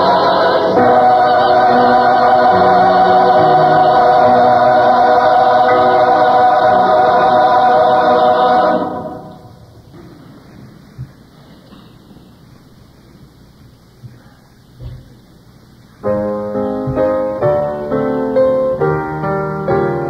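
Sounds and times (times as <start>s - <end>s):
choir singing a held chord: 0.0s - 9.6s
recording hiss and rumble: 0.0s - 20.0s.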